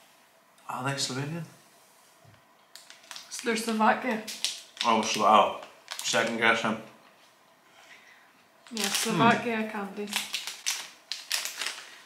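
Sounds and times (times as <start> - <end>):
plastic packet crinkling: 2.7 - 6.7, 8.6 - 9.4, 10.0 - 12.0.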